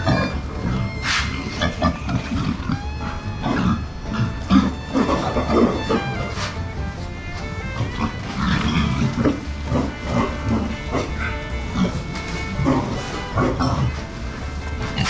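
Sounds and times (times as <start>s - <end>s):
pigs grunting and oinking: 0.0s - 6.6s, 7.7s - 12.0s, 12.6s - 14.0s
background music: 0.0s - 15.0s.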